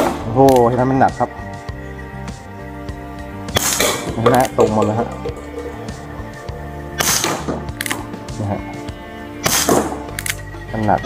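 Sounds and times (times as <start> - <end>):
background music: 0.0 - 11.0
air pistol shots: 3.5 - 4.2, 7.0 - 8.1, 9.4 - 10.4.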